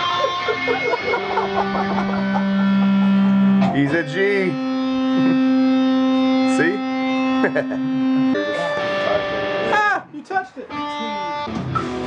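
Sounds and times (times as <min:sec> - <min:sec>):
electric guitar note ringing: 0:00.0 - 0:10.1, 0:10.7 - 0:12.0.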